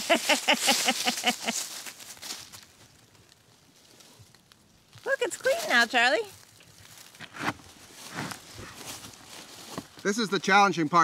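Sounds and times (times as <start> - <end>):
person laughing: 0.0 - 1.7
rustling steps in dry leaves: 0.0 - 10.2.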